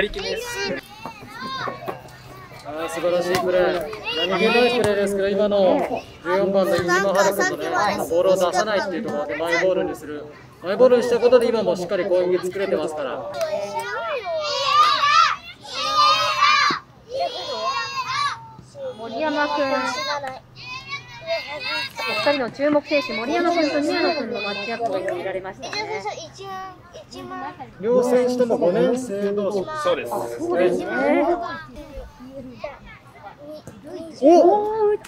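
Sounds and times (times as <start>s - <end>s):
children shouting: 0.0s - 4.9s, 12.6s - 27.6s, 29.5s - 32.8s.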